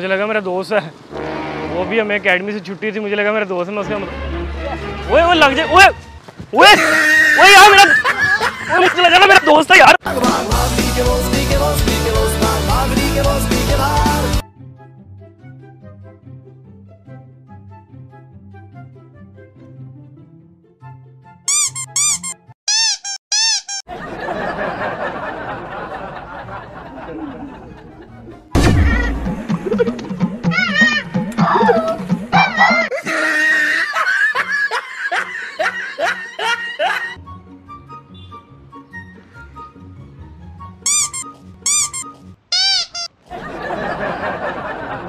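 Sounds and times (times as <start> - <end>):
high squeaks rising and falling: 21.5 - 23.9, 28.8 - 32.9, 40.8 - 43.2
light background music: 34.6 - 42.4.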